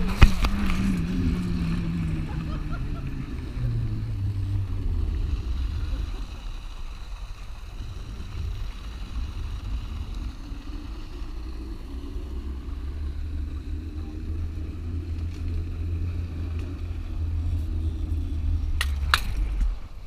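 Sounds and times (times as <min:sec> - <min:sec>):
trolley whine on steel cable: 0:00.0 - 0:20.0
wind rumbling on microphone: 0:00.0 - 0:20.0.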